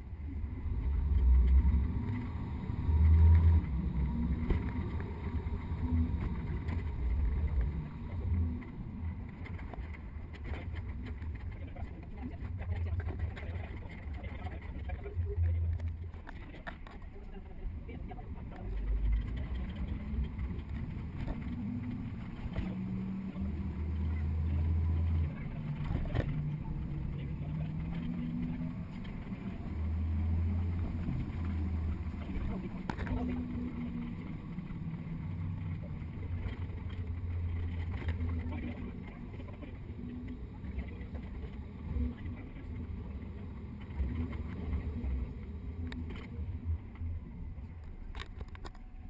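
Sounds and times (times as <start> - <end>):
bus engine running: 0.0 - 49.0
low road rumble: 0.0 - 49.0.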